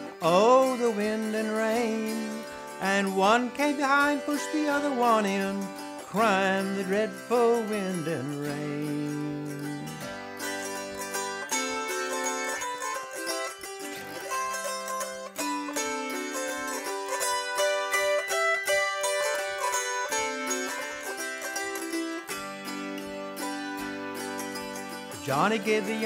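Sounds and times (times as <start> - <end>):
autoharp melody over chords: 0.0 - 26.0.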